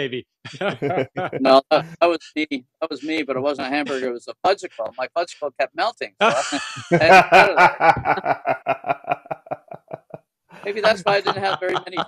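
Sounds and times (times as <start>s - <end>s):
men laughing: 0.5s - 2.0s, 3.0s - 4.1s, 6.2s - 12.0s.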